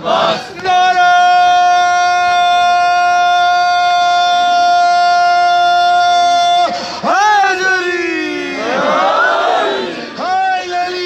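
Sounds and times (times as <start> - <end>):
faint crowd noise: 5.1 - 11.0.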